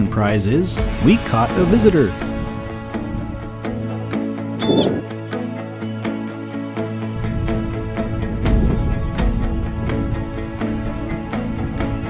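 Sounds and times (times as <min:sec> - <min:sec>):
guitar music: 0:01.2 - 0:08.2
high animal call: 0:04.6 - 0:05.1.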